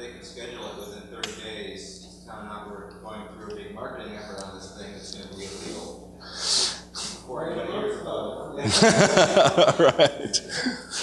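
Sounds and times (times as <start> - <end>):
low speech: 0.0 - 11.0.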